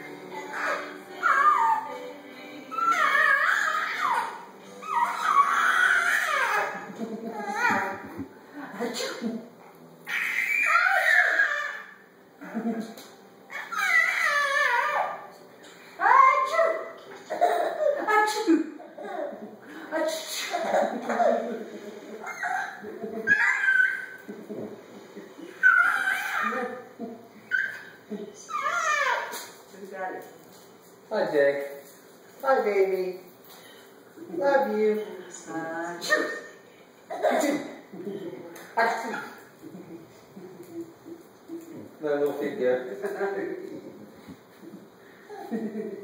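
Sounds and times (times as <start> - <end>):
high-pitched sing-song vocals: 0.0 - 3.5
baby squealing: 0.5 - 1.9, 2.7 - 8.0, 10.1 - 12.0, 13.5 - 15.2, 22.2 - 24.3, 25.5 - 26.8, 27.5 - 27.9, 28.5 - 29.5.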